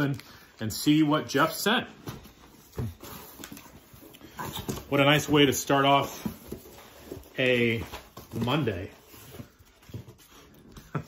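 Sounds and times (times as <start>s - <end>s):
cardboard rustling and scraping: 1.4s - 10.7s.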